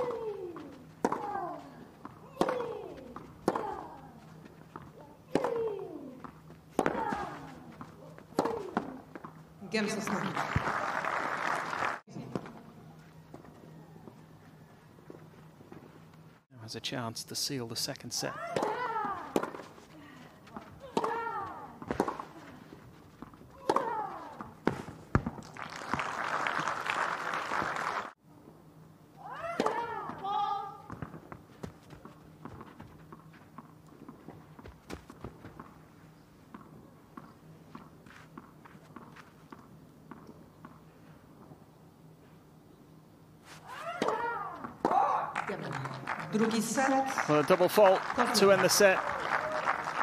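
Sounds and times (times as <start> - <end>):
racket hitting ball: 0.0 - 4.0, 5.3 - 9.4, 18.4 - 19.7, 20.5 - 22.4, 23.2 - 25.4, 29.5 - 31.2, 43.8 - 45.3
spectators applauding: 10.0 - 12.1, 25.4 - 28.2, 45.3 - 50.0
ball bouncing: 20.5 - 22.3, 23.2 - 25.6.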